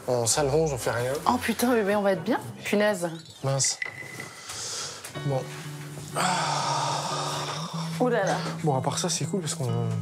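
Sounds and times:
background music with held notes: 0.1 - 10.0.

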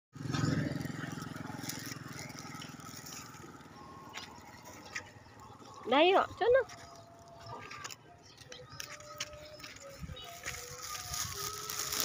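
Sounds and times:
motorcycle engine running: 0.2 - 12.0.

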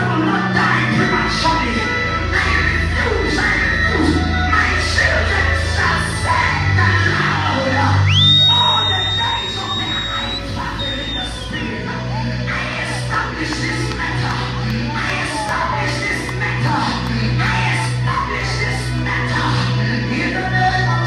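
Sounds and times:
man singing into microphone: 0.0 - 21.0
high whistling tone: 8.1 - 11.9.

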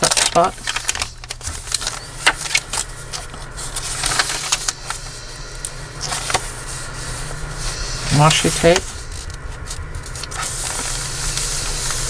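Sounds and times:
paper pages rustling: 0.0 - 5.2, 6.0 - 12.0
steady low hum: 0.0 - 12.0.

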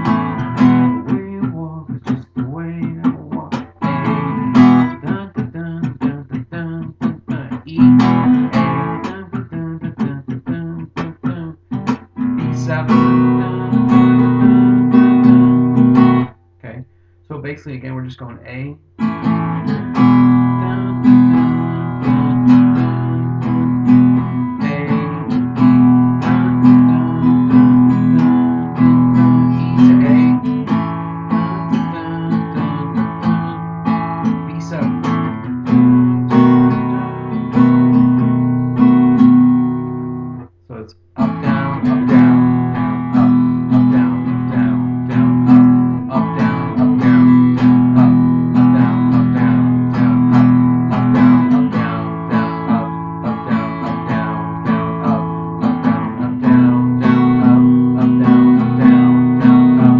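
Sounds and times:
acoustic guitar strumming blues: 0.0 - 59.9.

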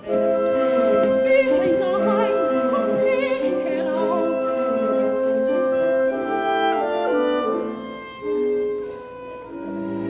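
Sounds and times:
orchestra playing: 0.0 - 10.0.

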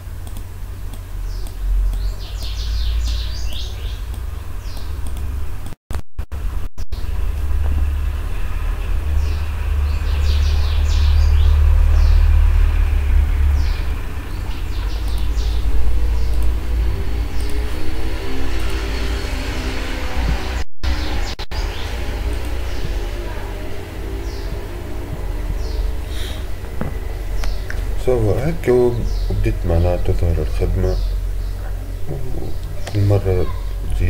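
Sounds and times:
steady low rumble: 0.0 - 19.0, 21.3 - 34.0
birds chirping: 0.7 - 5.1, 8.6 - 34.0.

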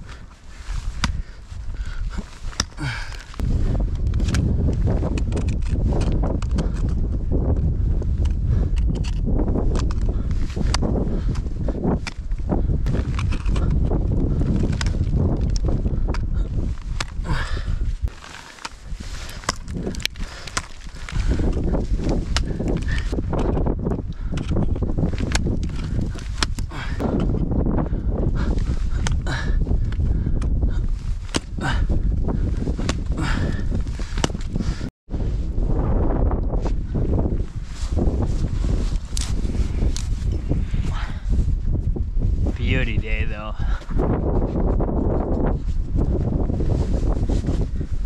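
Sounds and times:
low wind rumble on microphone: 0.0 - 48.0.

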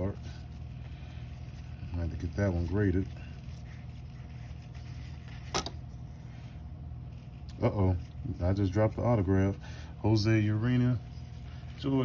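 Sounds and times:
handling trading cards: 0.0 - 8.4.

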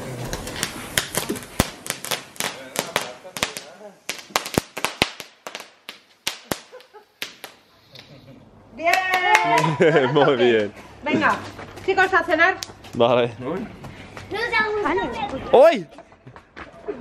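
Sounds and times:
firework crackling pops: 0.0 - 8.2.

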